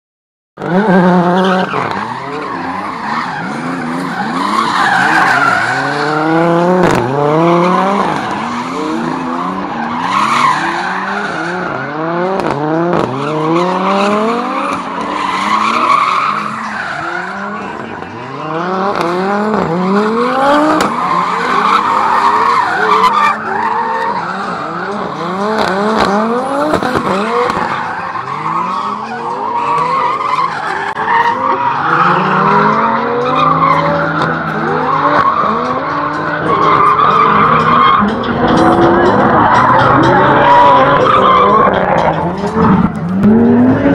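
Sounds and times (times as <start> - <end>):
car engines revving: 0.6 - 43.9.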